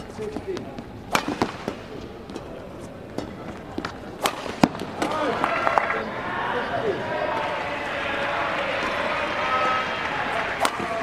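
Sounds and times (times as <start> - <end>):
sharp knocks on court: 1.1 - 1.8, 3.8 - 5.8
racket smashing shuttlecock: 1.1 - 2.0, 3.2 - 6.0.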